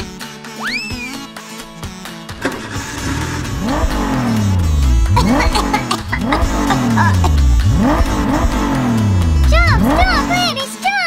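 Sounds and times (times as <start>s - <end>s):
engine revving: 2.2s - 10.8s.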